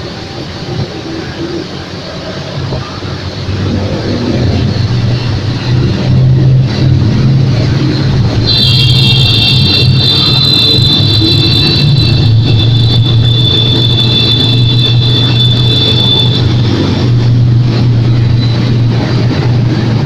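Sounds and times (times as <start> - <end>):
high steady whine: 0.0 - 20.0.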